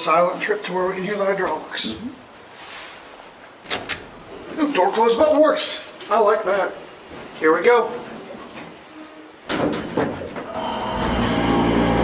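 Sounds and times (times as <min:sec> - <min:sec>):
sharp door clicks: 0:03.6 - 0:04.3.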